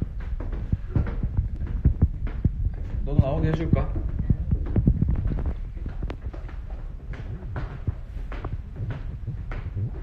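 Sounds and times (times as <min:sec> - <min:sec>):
microphone handling thumps: 0:00.0 - 0:10.0.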